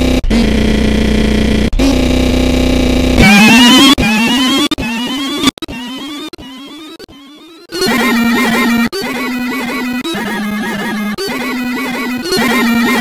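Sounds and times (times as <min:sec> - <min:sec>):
buzzing electronic tone: 0:00.0 - 0:13.0
warbling distorted synth sound: 0:00.0 - 0:13.0.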